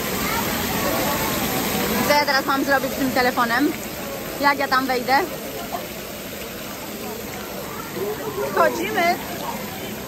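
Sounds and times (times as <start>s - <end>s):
faint voices: 0.0s - 10.0s
water pouring into pool: 0.0s - 10.0s.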